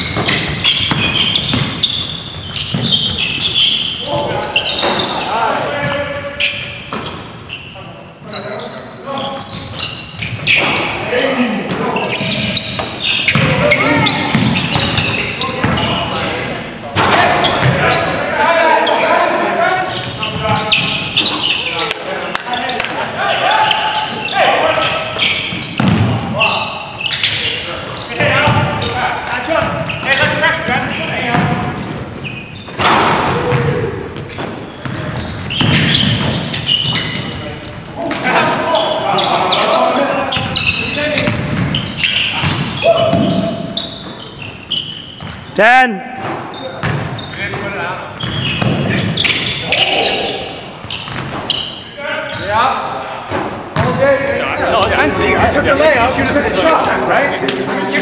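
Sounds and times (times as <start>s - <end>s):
players calling out: 0.0s - 58.0s
basketball bouncing on hardwood: 25.8s - 26.2s, 53.8s - 54.0s.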